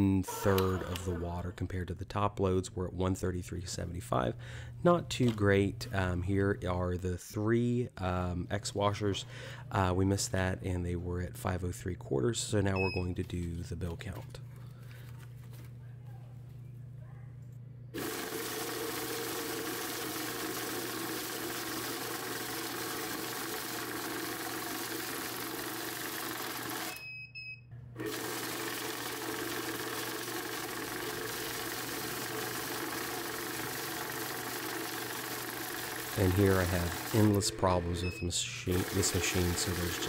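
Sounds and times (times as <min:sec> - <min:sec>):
bill counter whirring: 0:18.0 - 0:27.0, 0:28.0 - 0:40.0.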